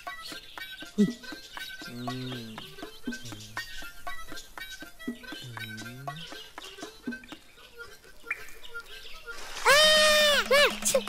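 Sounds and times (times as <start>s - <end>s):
faint bird-like calls: 0.1s - 10.4s.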